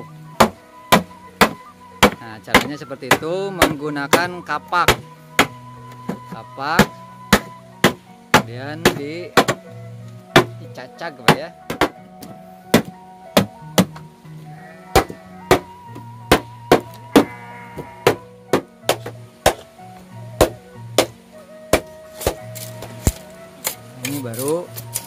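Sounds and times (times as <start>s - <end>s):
axe chopping bamboo: 0.4s - 9.7s, 10.3s - 10.6s, 11.2s - 14.0s, 15.0s - 17.0s, 18.1s - 19.7s, 20.4s - 25.0s.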